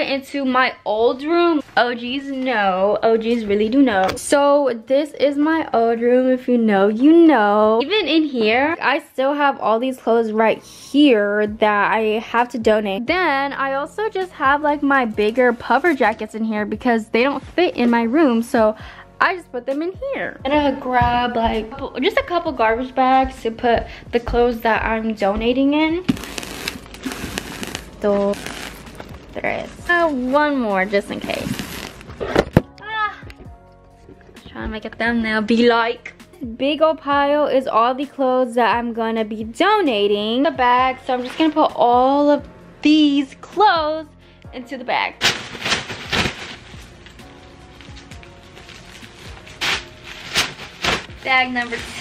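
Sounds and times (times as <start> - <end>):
quiet background music: 0.0 - 52.0
plastic bags rustling: 26.0 - 30.2, 30.9 - 32.6, 45.2 - 52.0.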